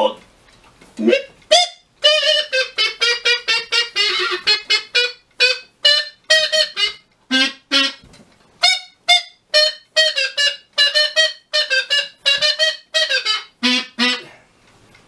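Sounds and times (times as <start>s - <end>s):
wordless tune of short notes: 0.0s - 15.0s.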